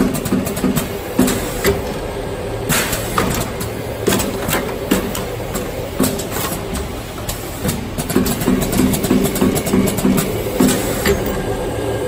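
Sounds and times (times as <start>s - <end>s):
machine clicks and knocks: 0.0s - 2.0s, 2.7s - 11.5s
packing machine running: 0.0s - 12.0s.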